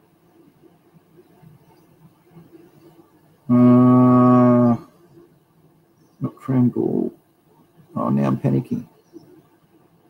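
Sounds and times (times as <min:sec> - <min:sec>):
man humming low note: 0:03.5 - 0:04.9.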